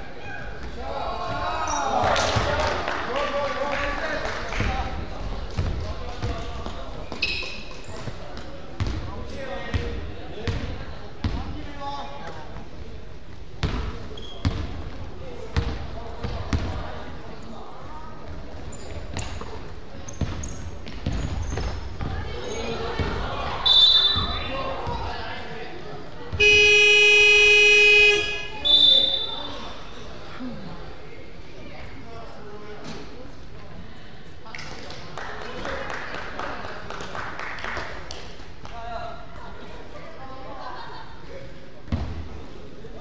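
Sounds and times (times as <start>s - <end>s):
basketball bouncing on gym floor: 8.8s - 9.1s, 20.1s - 22.2s
scoreboard buzzer: 26.4s - 28.6s
referee's whistle blast: 26.4s - 29.6s.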